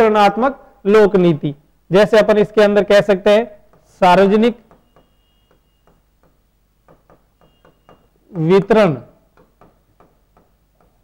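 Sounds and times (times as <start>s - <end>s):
marker pen writing on whiteboard: 2.4s - 11.0s.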